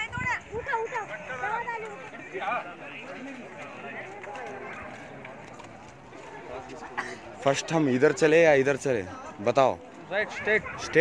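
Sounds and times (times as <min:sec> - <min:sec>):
footsteps on stone path: 0:00.0 - 0:11.0.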